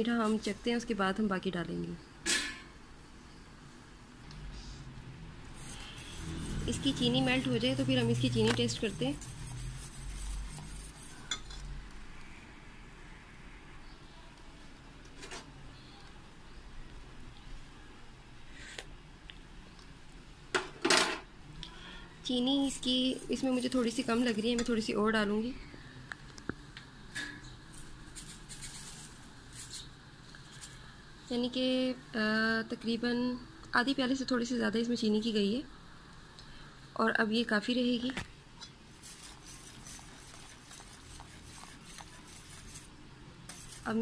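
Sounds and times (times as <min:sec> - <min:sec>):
whisk scraping a metal saucepan: 0:05.5 - 0:11.5, 0:22.4 - 0:24.8, 0:39.0 - 0:42.9, 0:43.5 - 0:44.0
soft scratchy rustles: 0:27.7 - 0:30.8, 0:38.9 - 0:44.0.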